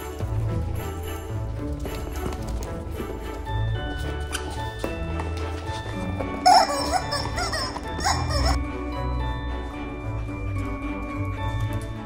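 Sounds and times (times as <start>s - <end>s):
background music: 0.0s - 12.0s
dog whining and yipping: 6.5s - 8.6s.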